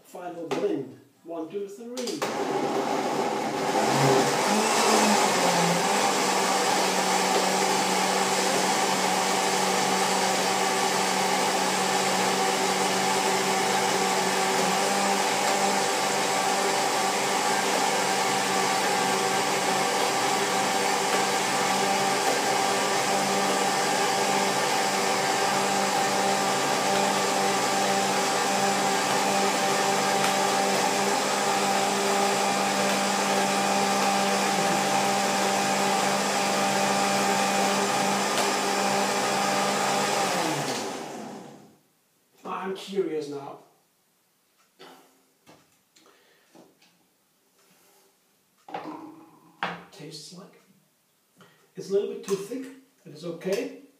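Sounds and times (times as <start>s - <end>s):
blender whirring: 2.0s - 41.7s.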